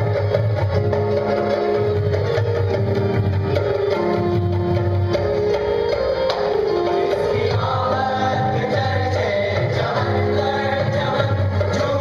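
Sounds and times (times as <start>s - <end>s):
hand drums: 0.0s - 12.0s.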